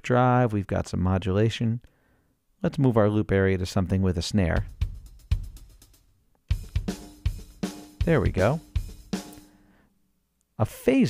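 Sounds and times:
drum loop with kick snare hi-hat: 0:04.5 - 0:09.5.

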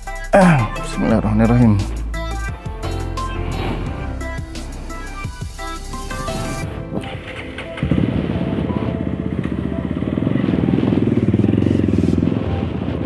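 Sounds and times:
background music: 0:00.0 - 0:13.0
motorcycle engine revving: 0:01.6 - 0:13.0.

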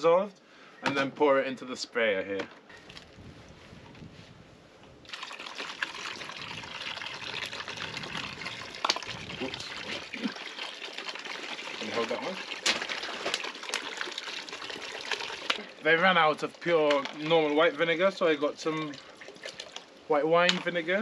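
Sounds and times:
liquid pouring into bucket: 0:05.1 - 0:20.8.

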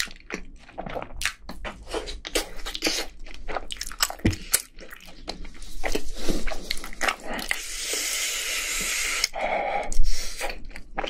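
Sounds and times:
chewing crispy food: 0:00.0 - 0:07.7, 0:10.3 - 0:11.0.

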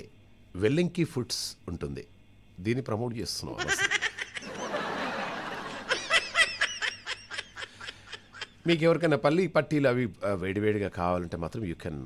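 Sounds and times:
person laughing: 0:03.6 - 0:04.8, 0:05.7 - 0:08.7.

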